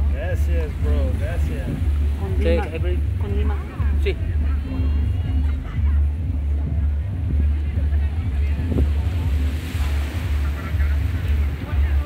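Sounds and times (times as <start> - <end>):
faint voices: 0.0 - 12.0
surf washing: 0.0 - 12.0
wind buffeting microphone: 0.0 - 12.0.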